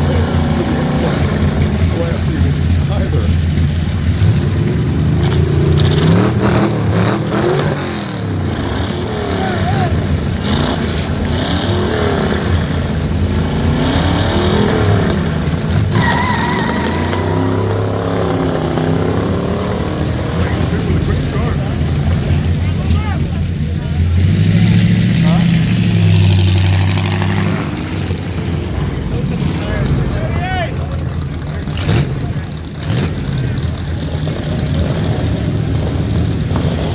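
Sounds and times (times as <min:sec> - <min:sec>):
crowd voices: 0:00.0 - 0:36.9
hot rod engine running loud: 0:00.0 - 0:36.9
hot rod engines accelerating: 0:00.0 - 0:36.9.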